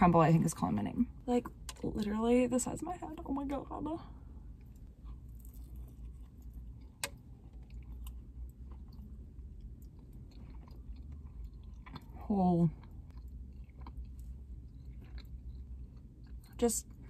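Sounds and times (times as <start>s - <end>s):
low steady hum: 0.0s - 17.0s
person chewing: 4.5s - 17.0s.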